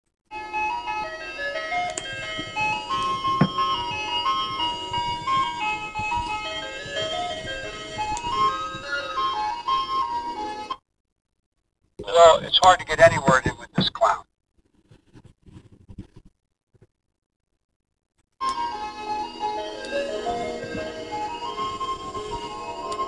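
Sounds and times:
electronic ice cream truck jingle: 0.3 - 10.8, 12.6 - 13.9, 18.4 - 23.0.

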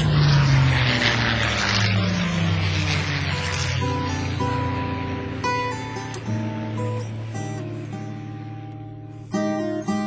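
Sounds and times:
propeller plane flying past: 0.0 - 10.0.

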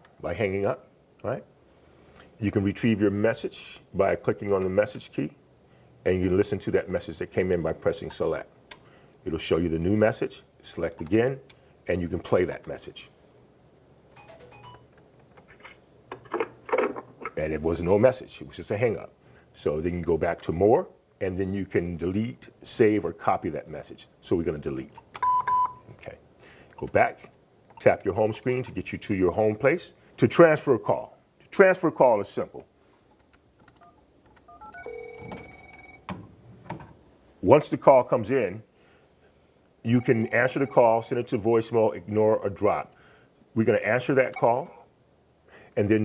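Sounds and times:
short beep tones: 14.2 - 14.8, 25.2 - 25.9
telephone keypad beeps: 14.2 - 14.8, 25.2 - 25.8, 33.8 - 36.1
phone ring tone: 14.2 - 14.9, 33.8 - 36.1, 40.0 - 40.8
rising key tones: 14.2 - 14.9, 33.7 - 36.1.

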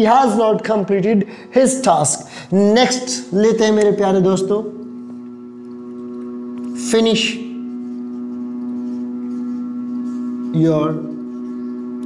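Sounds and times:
steady hum of held tones: 0.0 - 12.0.

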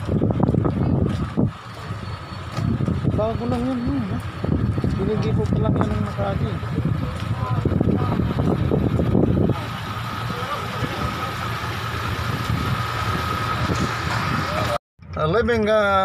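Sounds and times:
vehicle engine idling: 0.0 - 14.8
indistinct voices: 0.5 - 14.8.

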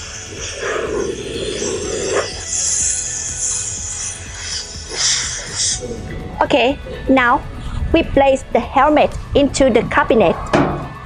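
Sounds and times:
steam gun hissing: 0.0 - 6.2
background music: 0.0 - 11.0.

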